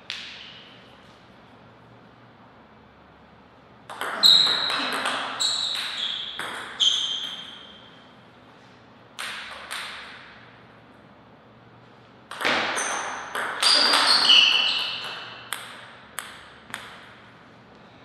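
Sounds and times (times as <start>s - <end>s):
paddle hitting table tennis ball: 3.9s - 6.8s, 12.3s - 17.2s
table tennis ball bouncing: 3.9s - 7.8s, 9.2s - 10.5s, 12.3s - 17.3s.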